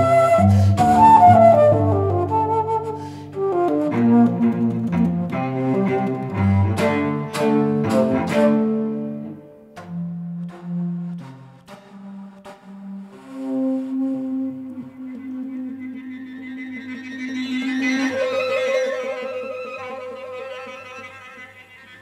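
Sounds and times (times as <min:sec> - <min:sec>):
bass flute: 0:00.0 - 0:20.4
cello low sustained notes: 0:00.0 - 0:22.0.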